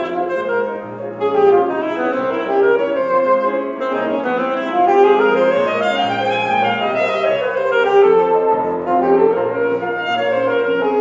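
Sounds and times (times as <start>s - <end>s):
piano accompaniment: 0.0s - 11.0s
saxophone melody: 0.0s - 11.0s.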